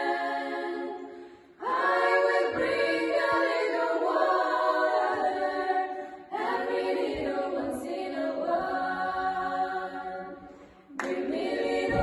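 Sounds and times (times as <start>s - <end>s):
women's choir singing: 0.0s - 12.0s.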